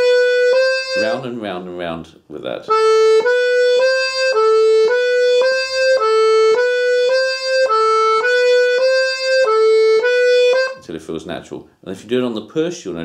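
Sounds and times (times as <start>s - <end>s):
button accordion playing notes: 0.0s - 1.2s, 2.7s - 10.8s.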